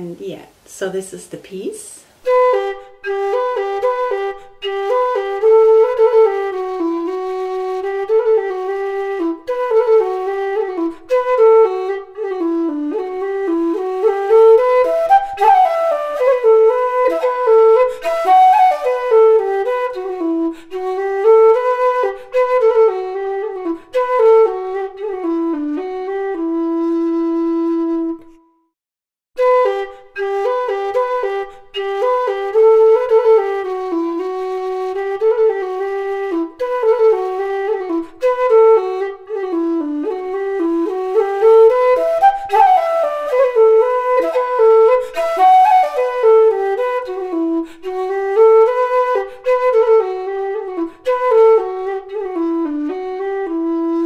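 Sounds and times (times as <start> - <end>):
low whistle melody: 2.2 - 28.7, 29.4 - 54.0.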